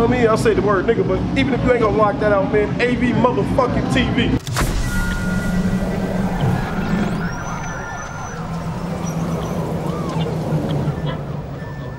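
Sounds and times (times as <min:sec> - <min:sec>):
steady low drone: 0:04.4 - 0:11.6
high whistle sweeping up: 0:04.6 - 0:10.6.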